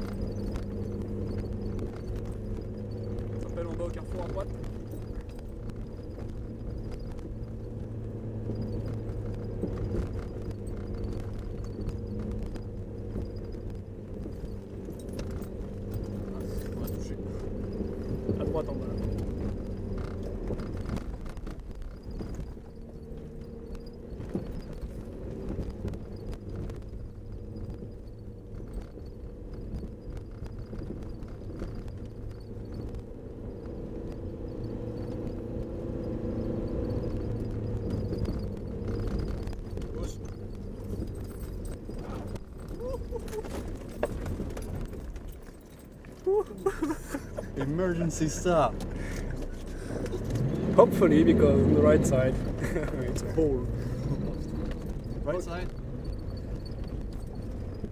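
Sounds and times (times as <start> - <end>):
car body knocking and rattling: 0.0 - 57.9
diesel engine running under load: 0.0 - 57.9.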